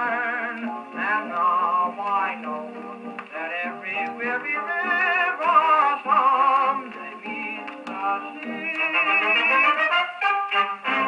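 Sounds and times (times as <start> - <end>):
dance-band record on gramophone: 0.0 - 11.0.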